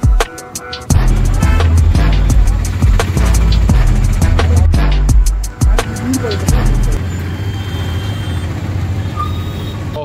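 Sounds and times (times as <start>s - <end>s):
road noise: 0.0s - 10.0s
auto-rickshaw engine running: 0.6s - 10.0s.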